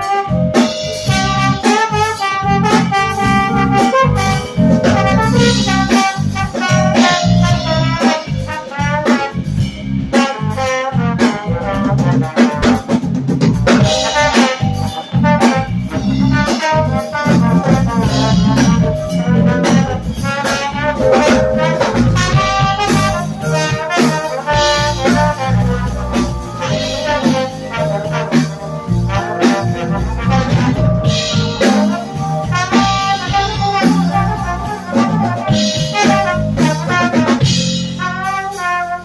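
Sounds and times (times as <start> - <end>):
electric guitar: 0.0 - 9.9, 12.1 - 37.7
bass: 0.0 - 39.0
drum kit: 0.0 - 39.0
trombone melody: 0.0 - 39.0.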